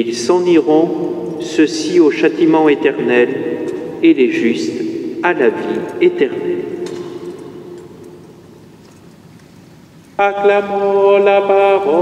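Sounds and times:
person reading aloud with echo: 0.0s - 8.6s, 10.2s - 12.0s.

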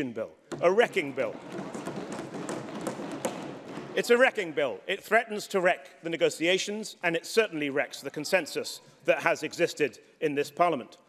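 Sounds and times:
taps and knocks: 0.5s - 4.0s.

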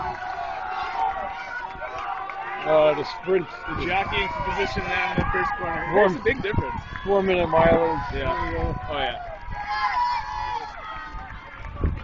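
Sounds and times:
runners' footfalls on dirt: 0.0s - 12.0s
spectators' voices: 0.0s - 12.0s.

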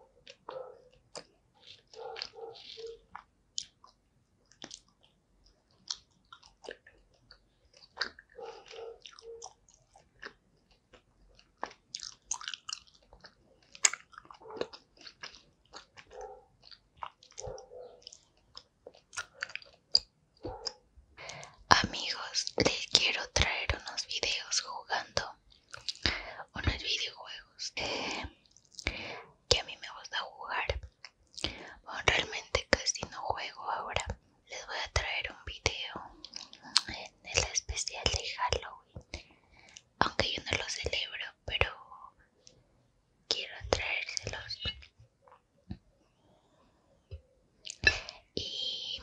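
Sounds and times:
chewing gummy candy: 0.2s - 41.8s, 47.6s - 49.0s
wet mouth clicks: 0.3s - 5.1s, 5.7s - 27.1s, 27.8s - 41.8s, 43.3s - 45.8s, 47.1s - 49.0s
close whispering: 2.0s - 3.1s, 20.5s - 25.4s, 26.0s - 39.2s, 40.0s - 42.2s, 43.3s - 44.8s, 47.7s - 49.0s.

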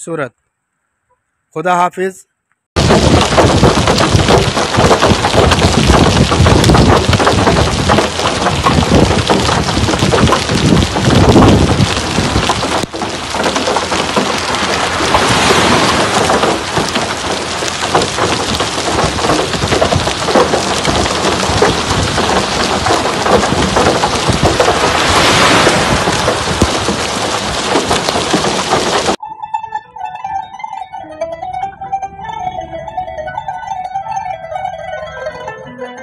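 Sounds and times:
deep rumble: 2.8s - 29.2s
heavy rain pouring: 2.8s - 29.2s.

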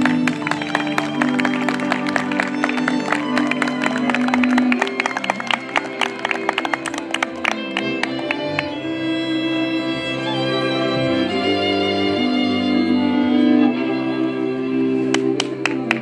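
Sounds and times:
audience applause: 0.0s - 8.8s, 15.1s - 16.0s
folk cimbalom band: 0.0s - 16.0s.

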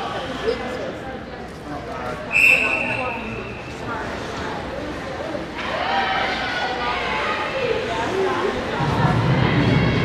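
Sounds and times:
arena chatter: 0.0s - 10.0s
referee's whistle: 2.3s - 3.6s.

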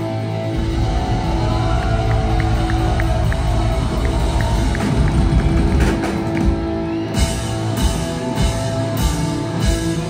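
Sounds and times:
steady low drone: 0.0s - 7.6s.

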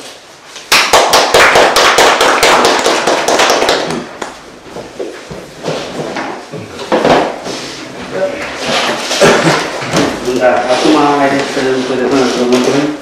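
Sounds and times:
small group clapping: 0.6s - 4.4s.

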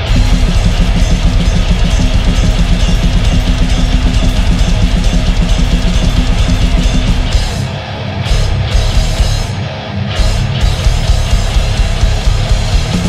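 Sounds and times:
rock band playing: 0.0s - 13.0s.

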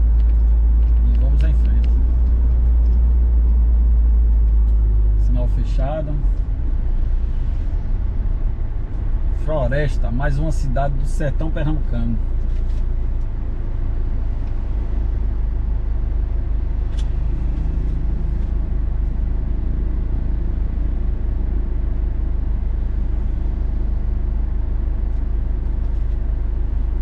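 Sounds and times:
road noise: 0.0s - 27.0s
vehicle engine drone: 0.0s - 27.0s.

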